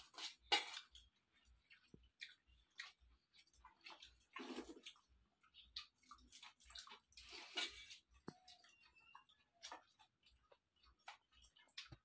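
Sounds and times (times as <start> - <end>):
faint clicks and taps on steel bowls: 0.0 - 12.0.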